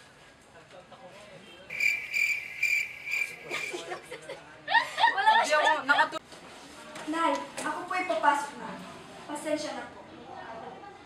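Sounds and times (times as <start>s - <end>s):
shrill insect trill: 1.7s - 3.8s.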